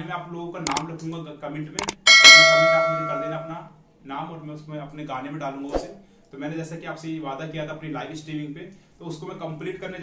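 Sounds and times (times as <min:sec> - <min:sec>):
mouse clicks: 0:01.8 - 0:02.0
bright bell ding: 0:01.9 - 0:03.6
man talking: 0:02.8 - 0:05.8.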